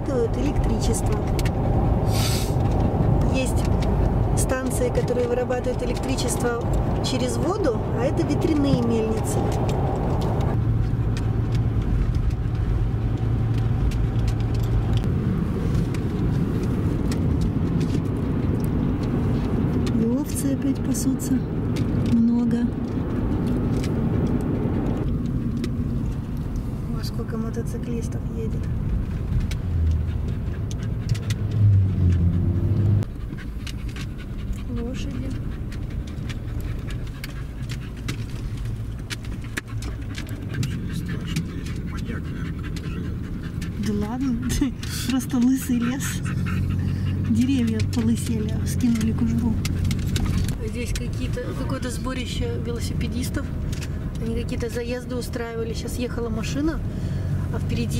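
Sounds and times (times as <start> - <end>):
car cabin road and engine rumble: 0.0 - 57.9.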